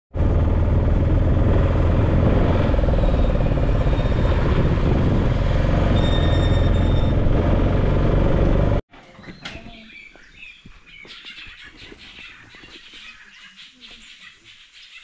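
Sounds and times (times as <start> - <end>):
road traffic rumble: 0.1 - 8.8.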